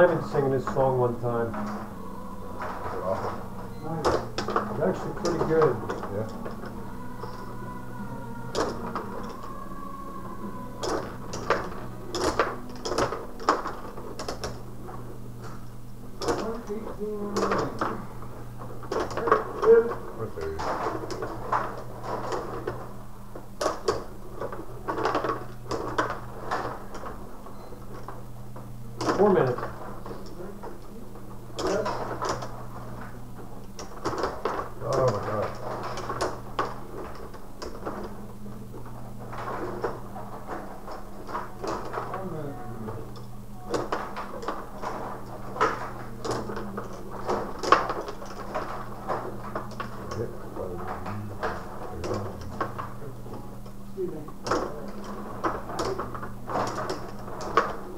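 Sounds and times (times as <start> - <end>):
steady low hum: 0.0 - 57.9.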